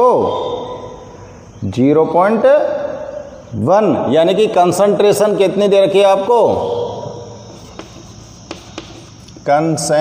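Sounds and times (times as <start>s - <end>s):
faint high-pitched drone: 0.0s - 10.0s
chalk tapping on blackboard: 7.4s - 9.5s.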